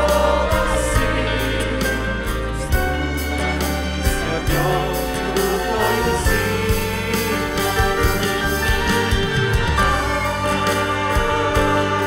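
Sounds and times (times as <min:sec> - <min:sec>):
choir singing: 0:00.0 - 0:12.0
musical accompaniment: 0:00.0 - 0:12.0.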